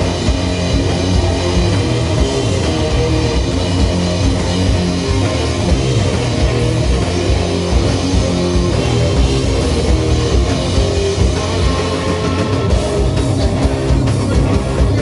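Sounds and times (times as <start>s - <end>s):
drum kit: 0.0s - 15.0s
electric guitars heavy chords: 0.0s - 15.0s.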